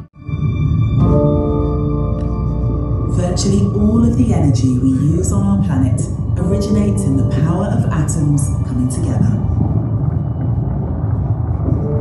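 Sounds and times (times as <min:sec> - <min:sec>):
deep rumbling soundtrack drone: 0:00.0 - 0:12.0.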